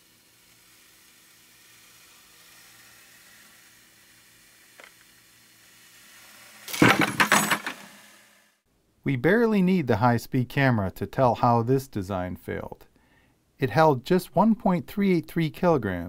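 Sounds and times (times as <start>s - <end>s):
metallic clatter of chain: 6.7s - 8.0s
wooden tower snapping and collapsing: 6.7s - 8.0s.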